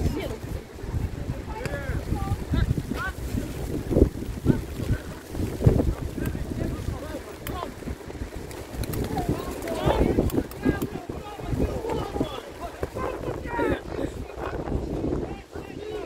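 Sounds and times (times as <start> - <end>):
wind buffeting microphone: 0.0 - 16.0
distant shouts: 9.1 - 16.0.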